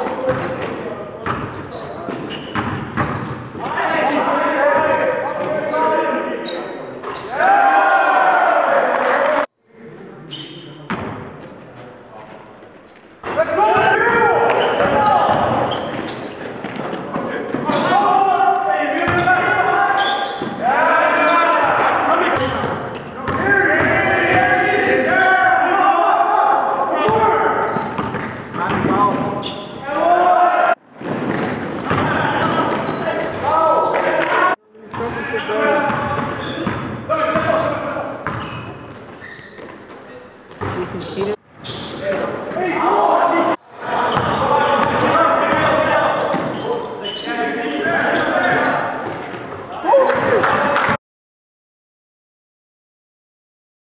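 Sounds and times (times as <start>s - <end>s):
players calling out: 1.5s - 10.7s, 13.2s - 30.8s, 31.4s - 39.8s, 40.4s - 51.0s.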